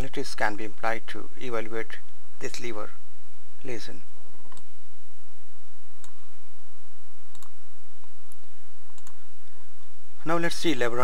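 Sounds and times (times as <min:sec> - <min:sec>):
steady low hum: 0:00.0 - 0:11.0
computer mouse clicks: 0:04.4 - 0:04.7, 0:07.3 - 0:07.6, 0:08.3 - 0:09.2.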